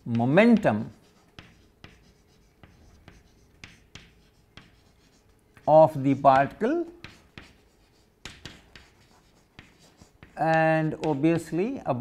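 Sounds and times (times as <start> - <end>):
chalk clicks on board: 0.1 - 5.7, 6.4 - 11.5
chalk scratching on blackboard: 0.5 - 11.6.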